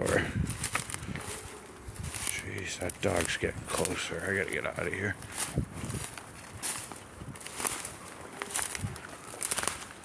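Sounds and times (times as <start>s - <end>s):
footsteps in dry leaves: 0.0s - 10.0s.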